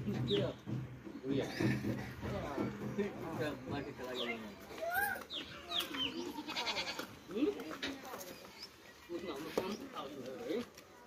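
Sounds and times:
goat bleating: 6.1s - 7.2s.

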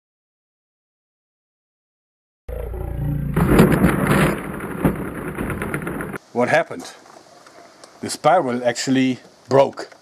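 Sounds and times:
wooden track rattling clatter: 3.4s - 6.2s.

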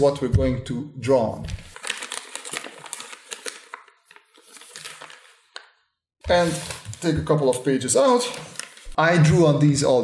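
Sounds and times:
paper rustling: 1.5s - 5.7s, 6.3s - 9.0s
paper wrapper tearing: 1.5s - 5.7s, 8.3s - 9.0s.

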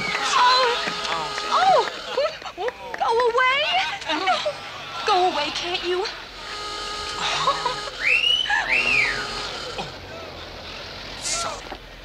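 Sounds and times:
voices: 0.0s - 11.8s
wolf whistle: 7.9s - 9.8s.

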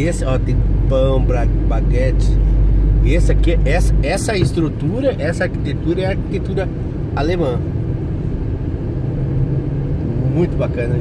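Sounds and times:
vehicle engine and tyres rumbling: 0.0s - 11.0s.

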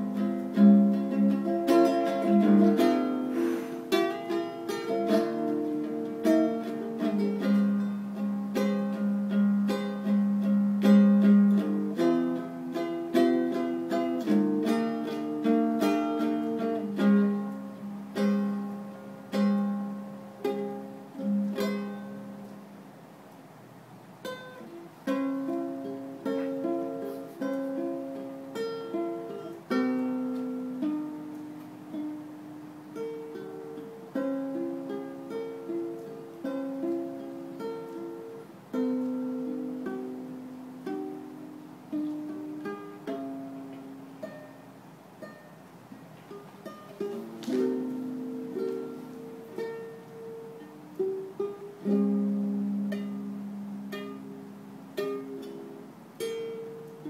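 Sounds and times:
ukulele melody: 0.0s - 57.0s.

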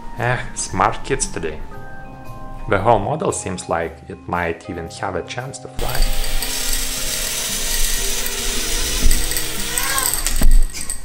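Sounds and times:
drone motors buzzing: 5.9s - 11.0s.

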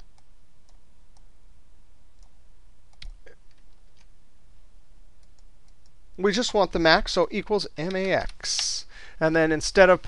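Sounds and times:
low electrical hum: 0.0s - 10.0s
computer mouse clicks: 2.2s - 4.1s, 5.2s - 6.0s.

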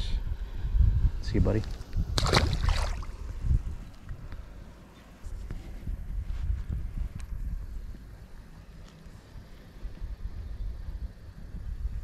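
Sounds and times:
low steady rumble: 0.0s - 12.0s
fish splashing in water: 2.2s - 3.2s.

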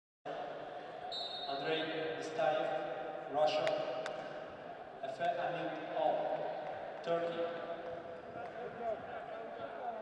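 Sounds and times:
reverberant arena ambience: 0.3s - 10.0s.

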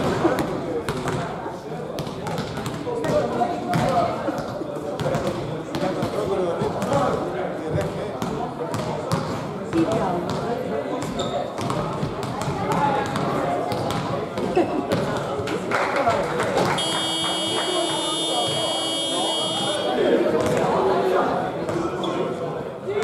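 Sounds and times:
chatter of many voices: 0.0s - 23.0s.

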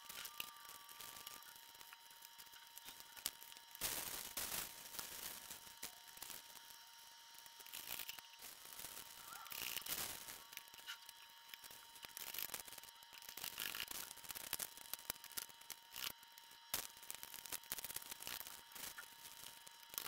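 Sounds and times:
plastic wrappers crinkling: 0.0s - 20.0s.

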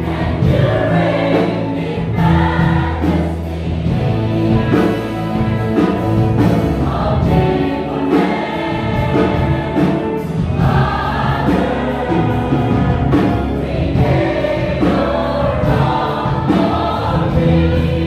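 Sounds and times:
choir singing gospel song: 0.0s - 18.0s.

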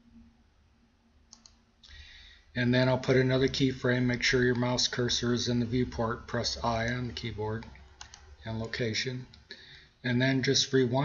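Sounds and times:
faint computer clicks: 1.3s - 2.0s, 4.3s - 5.1s, 6.7s - 9.8s.

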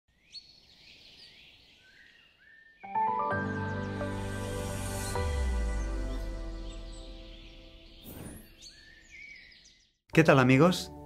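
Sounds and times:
bird chirps: 0.1s - 10.0s
soft whistled bird calls: 5.8s - 9.9s.

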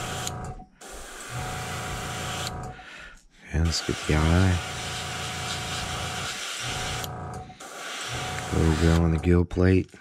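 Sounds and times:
airbrush spraying hiss: 0.8s - 2.5s, 3.6s - 9.0s.

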